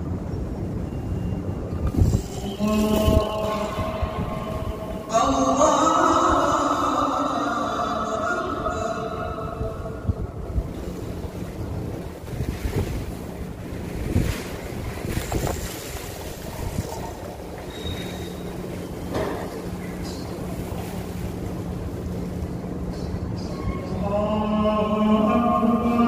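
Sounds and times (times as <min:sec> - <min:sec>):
crowded hall rumble: 0:00.0 - 0:26.0
chanted recitation: 0:02.1 - 0:10.5, 0:23.4 - 0:26.0
rustles and bumps: 0:10.7 - 0:17.2.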